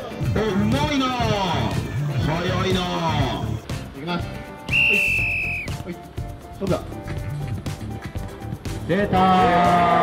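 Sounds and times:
whistle blown: 4.7s - 5.8s.

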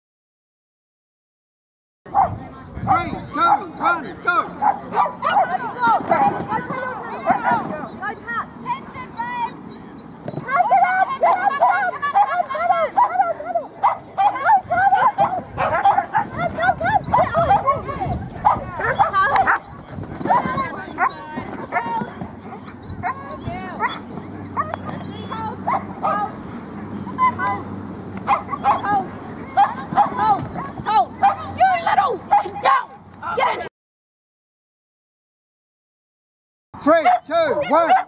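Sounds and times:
dogs barking and yipping: 2.1s - 33.7s, 36.8s - 38.0s.

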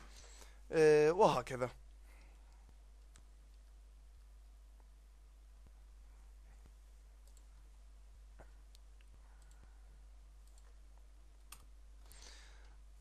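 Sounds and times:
computer mouse clicks: 7.2s - 7.6s, 8.7s - 9.7s, 10.4s - 10.8s, 11.4s - 12.2s.

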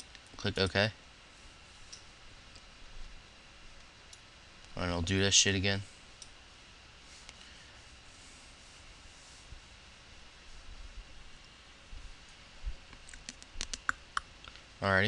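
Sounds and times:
faint steady hiss: 0.0s - 15.0s.

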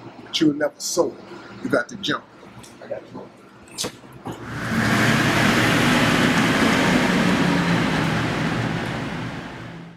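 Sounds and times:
car engine driving off: 4.3s - 9.9s.

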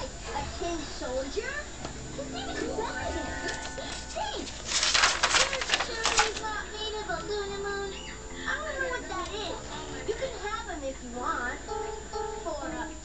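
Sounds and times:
cartoon background music: 2.1s - 4.4s.

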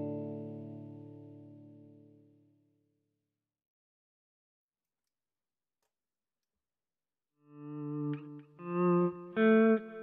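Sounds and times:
electric guitar notes and chords: 0.0s - 2.2s, 7.5s - 10.0s.

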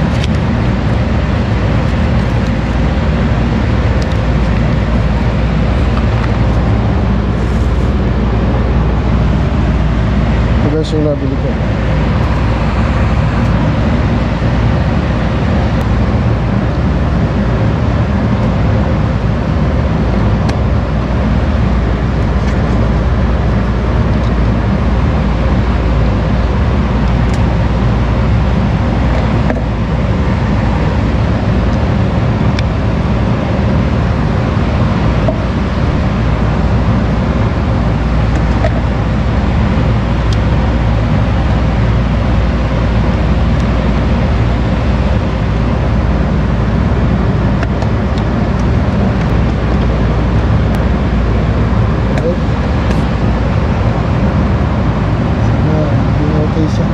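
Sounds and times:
loud machine hum: 0.0s - 56.9s.

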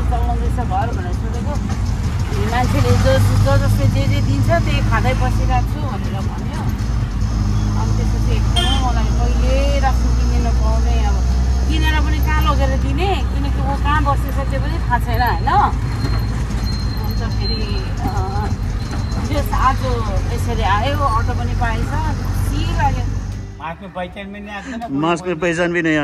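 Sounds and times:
people talking: 0.0s - 6.8s, 7.8s - 15.8s, 17.0s - 18.6s, 19.2s - 26.0s
auto-rickshaw engine droning: 0.0s - 26.0s.

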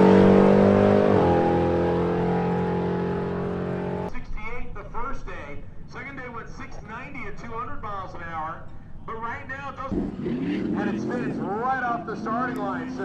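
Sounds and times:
people talking: 4.1s - 13.0s.

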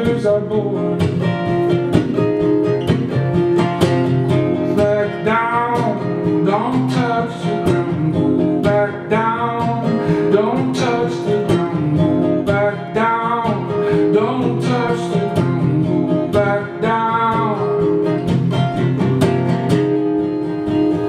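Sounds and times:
man singing: 0.0s - 1.4s, 4.3s - 18.2s
acoustic guitar strumming: 0.0s - 21.0s.

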